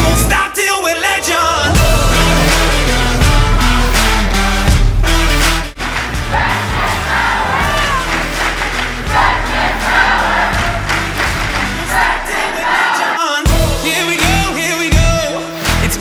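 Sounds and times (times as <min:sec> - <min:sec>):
crowd cheering and shouting: 0:05.9 - 0:13.9.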